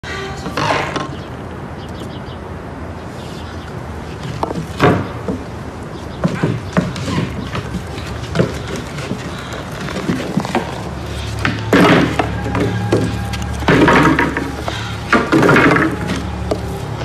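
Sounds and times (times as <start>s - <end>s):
boards scraping and knocking: 4.2s - 17.0s
wooden floorboards being pried up: 6.2s - 16.3s.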